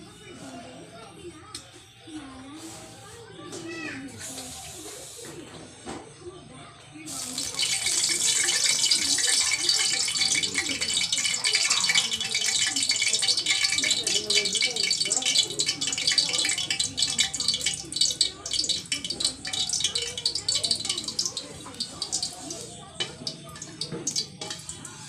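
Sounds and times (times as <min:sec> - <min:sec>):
fish frying in sizzling oil: 0:07.1 - 0:25.0.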